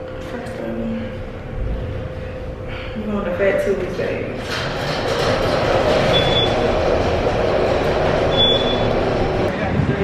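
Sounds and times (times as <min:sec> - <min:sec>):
elevator rumble and hum: 0:00.0 - 0:10.0.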